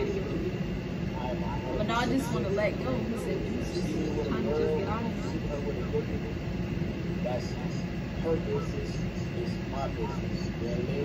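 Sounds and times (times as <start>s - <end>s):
faint indistinct speech: 0.0s - 11.0s.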